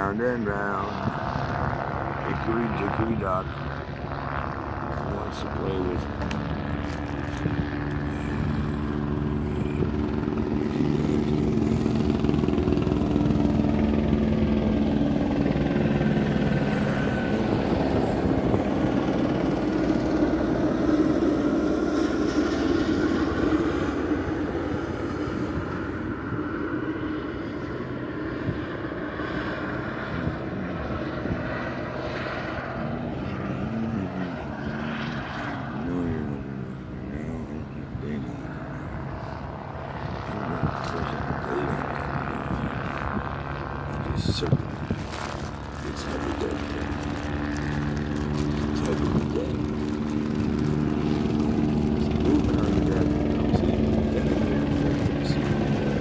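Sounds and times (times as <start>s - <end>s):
aircraft flying low overhead: 0.0s - 56.0s.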